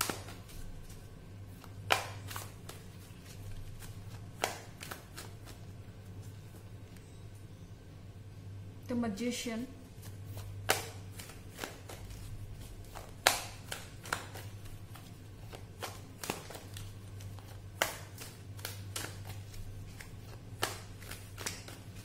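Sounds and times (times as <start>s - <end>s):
cards shuffled by hand: 0.0s - 6.7s, 10.0s - 22.0s
low steady hum: 0.0s - 22.0s.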